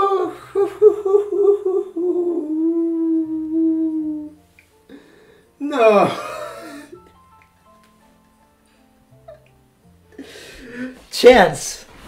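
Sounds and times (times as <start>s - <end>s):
man groaning: 5.6s - 6.4s.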